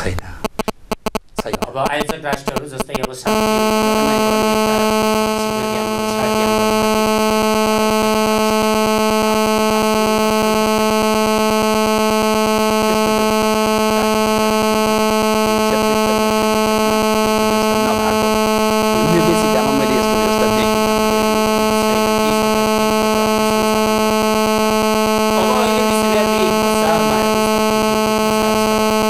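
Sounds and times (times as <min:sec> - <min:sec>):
loud electrical buzz: 0:03.3 - 0:29.0
faint speech: 0:19.0 - 0:20.8.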